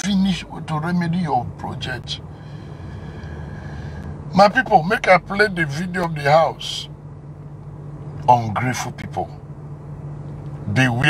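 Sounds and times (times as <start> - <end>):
car engine hum from cabin: 0.0 - 11.0.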